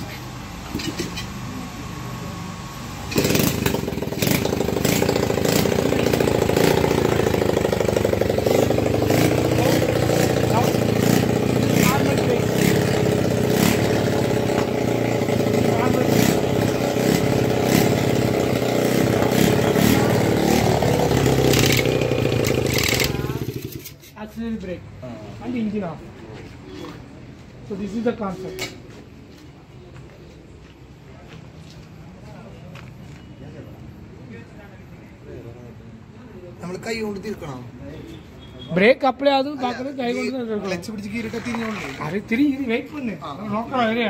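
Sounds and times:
motorcycle engine running: 3.0 - 24.0.

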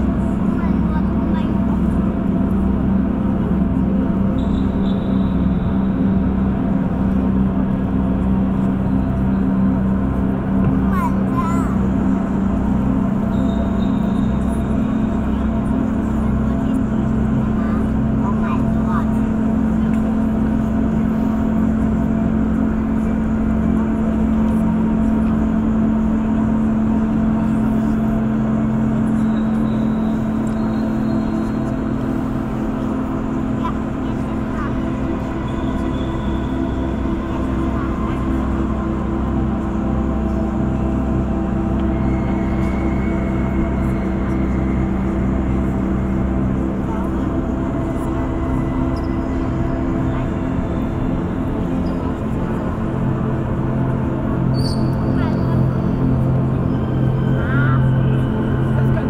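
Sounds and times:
low droning hum: 0.0 - 59.0
faint sustained tones: 11.7 - 59.0.

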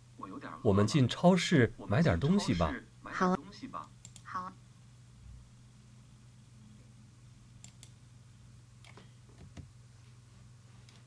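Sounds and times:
low steady hum: 0.0 - 11.0
faint mouse clicks: 7.6 - 8.0.

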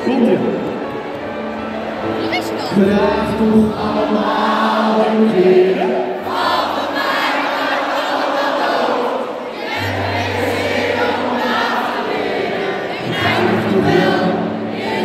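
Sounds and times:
live pop music: 0.0 - 7.5, 9.8 - 15.0
crowd singing along: 0.0 - 15.0.

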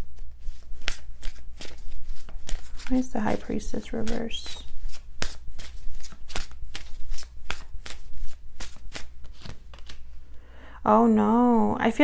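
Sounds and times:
cards being shuffled: 0.0 - 10.2.

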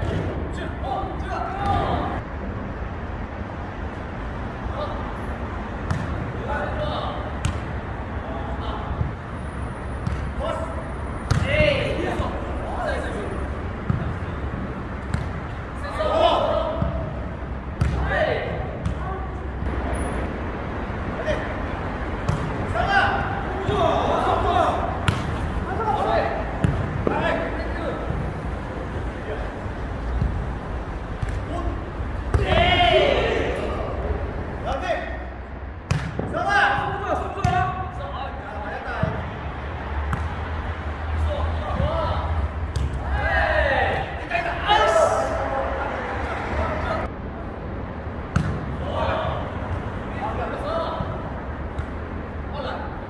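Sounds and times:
players shouting: 0.0 - 2.2, 15.6 - 20.0, 21.0 - 35.4, 36.2 - 47.1, 48.6 - 51.4
ball kicked and bouncing on turf: 5.8 - 7.8, 10.0 - 10.5, 11.2 - 12.2, 13.8 - 14.3, 15.0 - 15.9, 16.6 - 19.8, 22.2 - 24.0, 25.0 - 28.4, 30.0 - 32.8, 35.8 - 38.1, 38.8 - 39.3, 41.6 - 43.3, 48.3 - 49.9
ball kicked and bouncing: 26.6 - 27.2, 42.7 - 43.0, 48.3 - 48.7.

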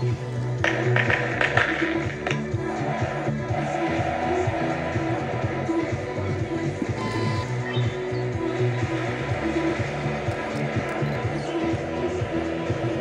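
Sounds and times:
pop music on radio: 0.0 - 13.0.

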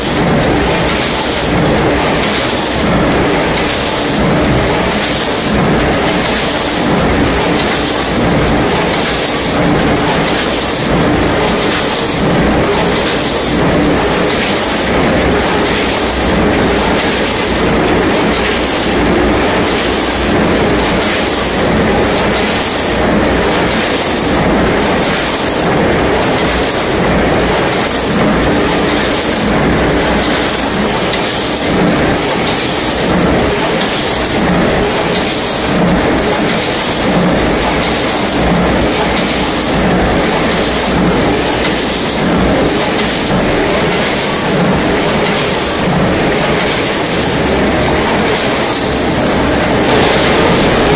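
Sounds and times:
packaging machine running: 0.0 - 50.9.

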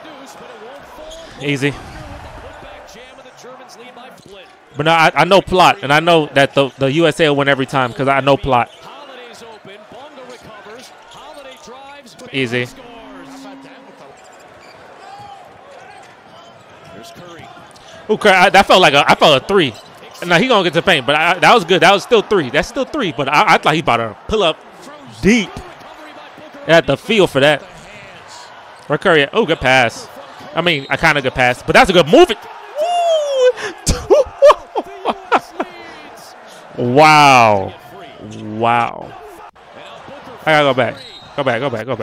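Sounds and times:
crowd noise: 0.0 - 42.0
man chuckling: 33.2 - 35.8.

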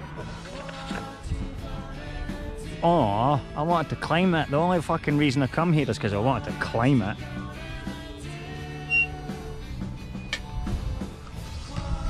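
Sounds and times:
background music with held notes: 0.0 - 12.0
short high tone: 8.9 - 9.1.

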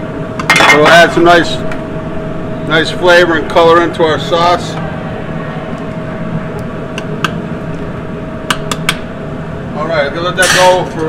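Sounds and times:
kitchen background hum: 0.0 - 11.0.

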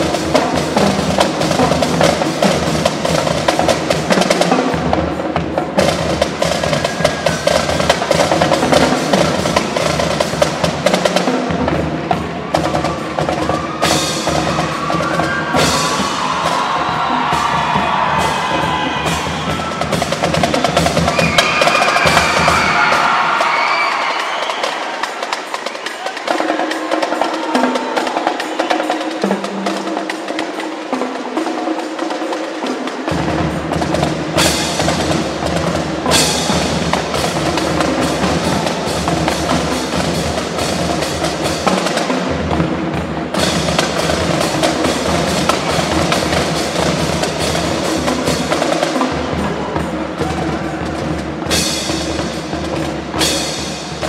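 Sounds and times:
marching band drums: 0.0 - 54.0.

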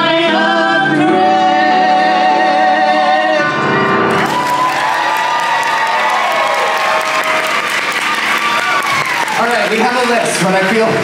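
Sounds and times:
audience cheering and shouting: 4.1 - 10.9
audience clapping: 4.1 - 11.0.

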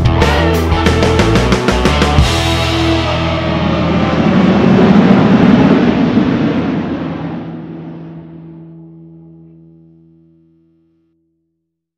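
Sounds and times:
loud rushing whoosh: 1.6 - 9.3
low ringing tone: 2.3 - 10.9.

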